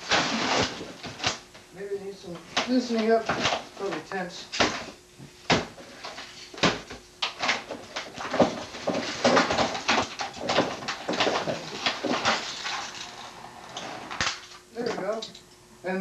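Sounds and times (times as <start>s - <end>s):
objects rustling and clicking: 0.0s - 1.7s, 2.6s - 15.4s.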